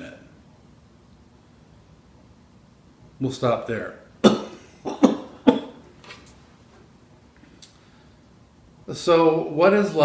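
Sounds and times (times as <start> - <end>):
man coughing: 4.2 - 5.8.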